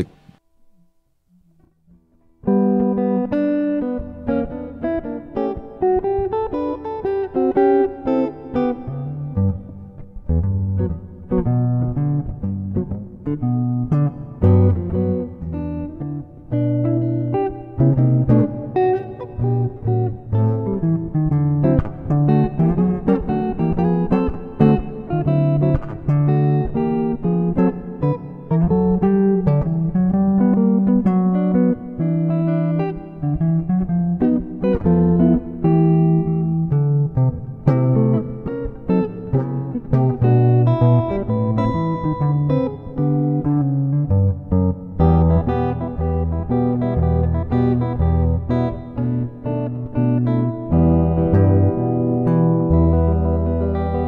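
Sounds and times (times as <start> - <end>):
electric guitar fingerstyle chords: 0.0 - 54.0.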